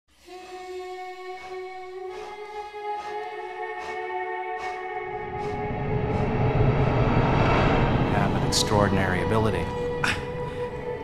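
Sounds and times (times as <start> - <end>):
low cinematic rumble: 4.9 - 11.0.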